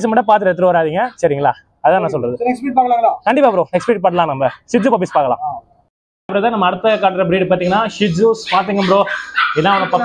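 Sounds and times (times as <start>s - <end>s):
man talking: 0.0s - 5.7s, 6.3s - 10.0s
dog barking: 3.8s - 5.4s, 8.0s - 10.0s.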